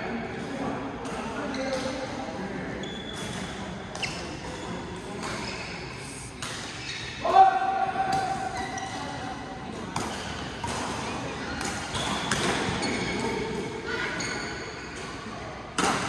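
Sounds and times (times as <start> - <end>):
voices echoing in hall: 0.0 - 16.0
racket hitting shuttlecock: 9.9 - 13.6, 15.8 - 16.0.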